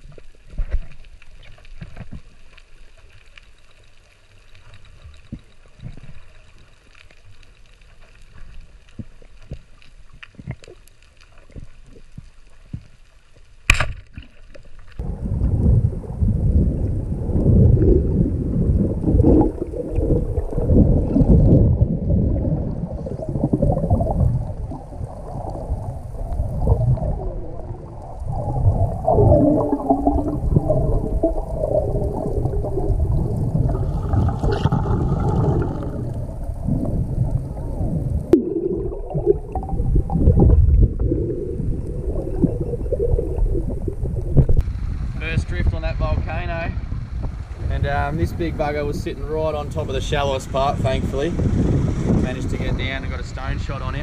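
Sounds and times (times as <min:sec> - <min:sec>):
underwater rushing and bubbles: 0:00.0 - 0:54.0.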